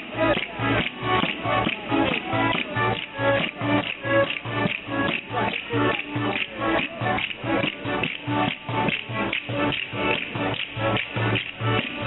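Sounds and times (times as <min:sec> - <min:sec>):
accordion folk dance tune: 0:00.0 - 0:12.0.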